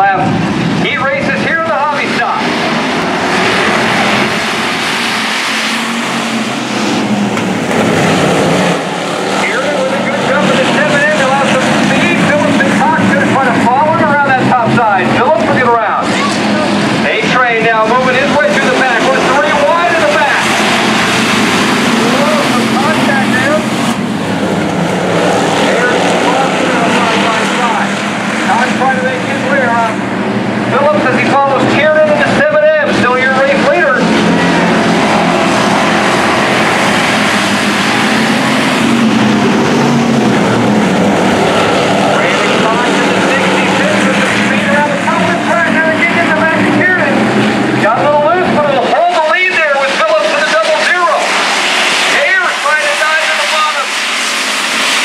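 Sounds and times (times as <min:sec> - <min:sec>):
race car engines droning: 0:00.0 - 0:55.0
voices: 0:09.3 - 0:21.0, 0:21.7 - 0:30.0, 0:30.7 - 0:35.2, 0:42.0 - 0:51.3, 0:52.1 - 0:53.9.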